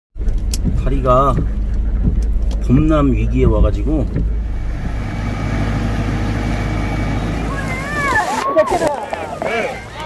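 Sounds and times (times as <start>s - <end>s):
car engine rumble: 0.2s - 10.0s
tyres on wet road: 0.2s - 10.0s.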